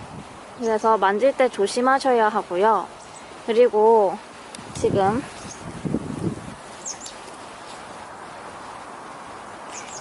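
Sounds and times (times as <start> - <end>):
hiss of background noise: 0.0 - 10.0.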